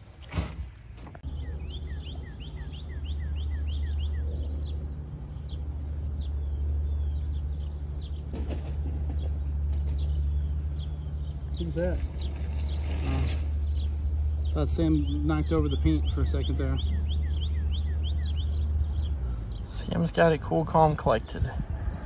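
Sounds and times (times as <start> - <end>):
small bird chirping: 1.2 - 21.4
steady low rumble: 21.1 - 22.0.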